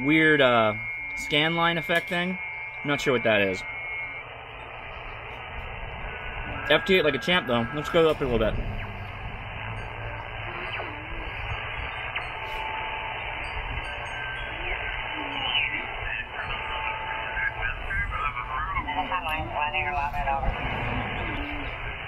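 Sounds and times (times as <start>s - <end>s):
garbled radio voices: 0.0s - 22.0s
radio band noise hiss: 0.0s - 22.0s.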